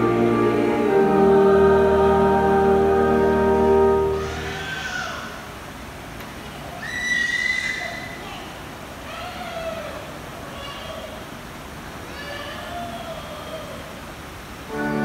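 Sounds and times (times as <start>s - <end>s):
music of long held chords: 0.0s - 4.5s, 14.7s - 15.0s
baby crying: 4.1s - 5.4s.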